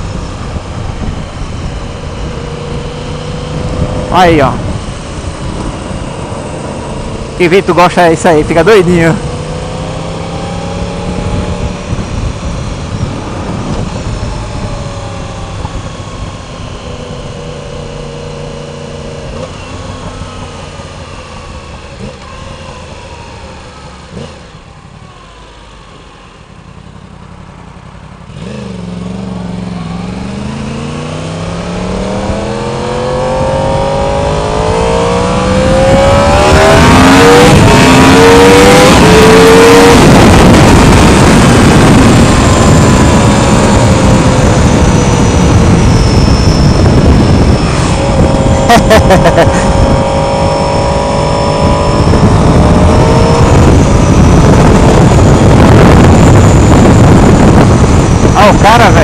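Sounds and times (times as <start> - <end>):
wind noise on microphone: 0.0 - 7.4, 9.0 - 23.4, 28.4 - 59.0
motorcycle engine accelerating: 0.0 - 59.0.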